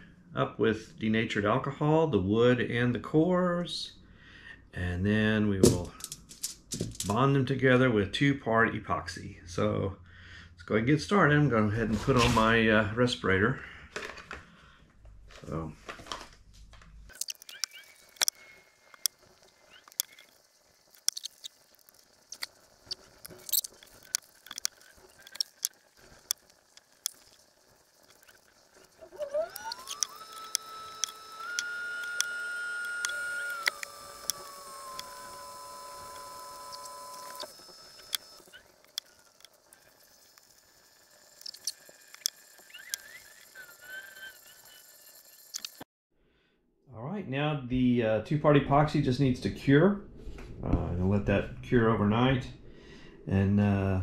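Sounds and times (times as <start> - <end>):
whine rising in pitch: 28.8 - 45.8.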